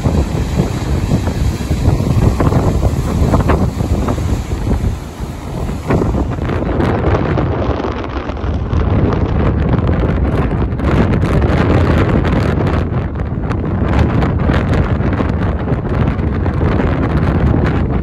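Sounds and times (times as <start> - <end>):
rough sea surf: 0.0 - 18.0
wind buffeting microphone: 0.0 - 18.0.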